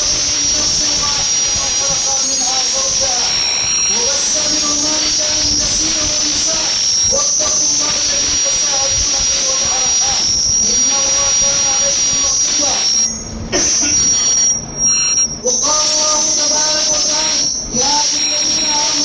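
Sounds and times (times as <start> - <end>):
sound system whine and hiss: 0.0 - 19.0
man chanting through loudspeaker: 4.0 - 10.2.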